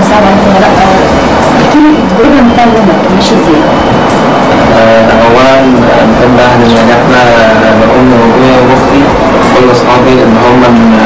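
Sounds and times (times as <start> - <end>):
loud steady noise: 0.0 - 11.0
person's voice: 4.7 - 11.0.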